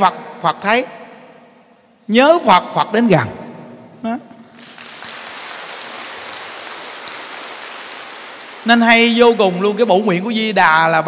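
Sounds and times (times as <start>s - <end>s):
audience applauding: 4.4s - 9.6s.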